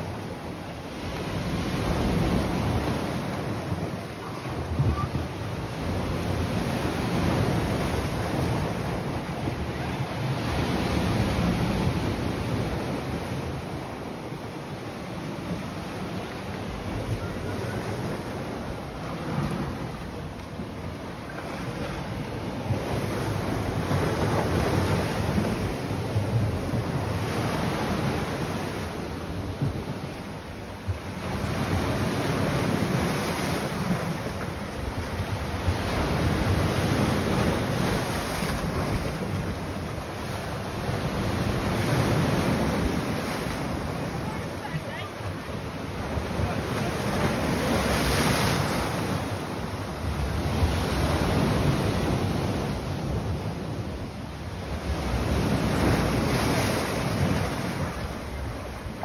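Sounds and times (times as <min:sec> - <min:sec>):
sea waves breaking on rocks: 0:00.0 - 0:59.0.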